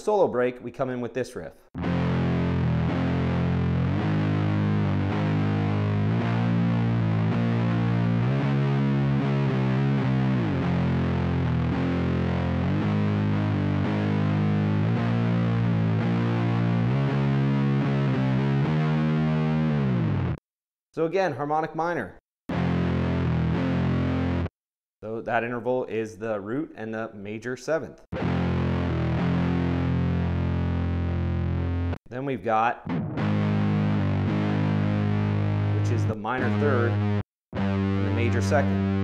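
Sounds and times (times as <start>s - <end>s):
distorted electric guitar riff: 1.8s - 20.4s, 22.5s - 24.5s, 28.1s - 32.0s, 32.8s - 39.0s.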